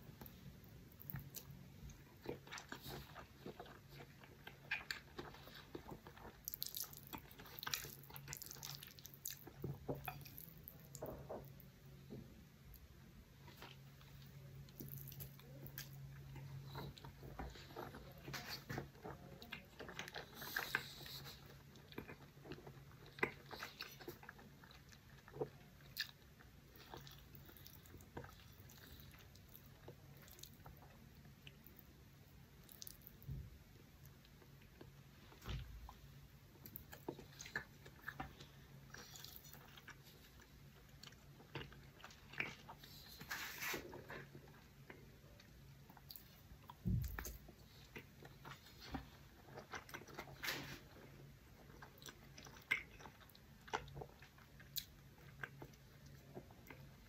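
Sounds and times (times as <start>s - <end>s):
faint low hum: 0.0s - 57.0s
wet chewing clicks and smacks: 0.2s - 11.7s, 12.7s - 33.3s, 51.5s - 57.0s.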